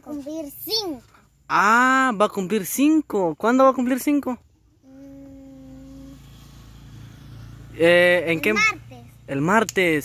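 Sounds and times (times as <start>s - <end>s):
child humming: 4.8s - 6.5s.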